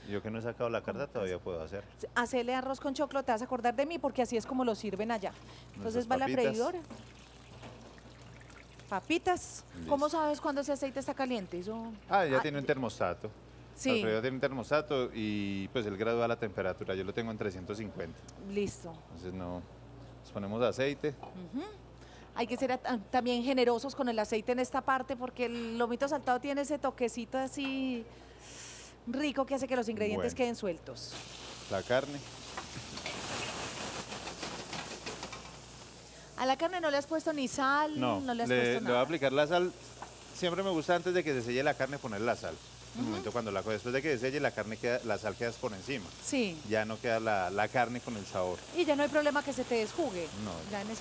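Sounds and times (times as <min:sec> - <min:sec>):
kitchen background hum: 0:00.0 - 0:51.0
meat sizzling in hot oil: 0:04.7 - 0:13.1, 0:31.1 - 0:51.0.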